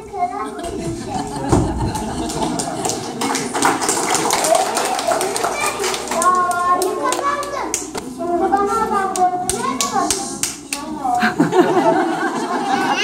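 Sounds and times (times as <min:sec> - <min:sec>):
child speaking: 0:00.0 - 0:01.2, 0:04.5 - 0:11.3, 0:12.6 - 0:13.0
children's voices: 0:00.0 - 0:13.0
scattered clapping: 0:01.8 - 0:08.0, 0:09.1 - 0:10.9.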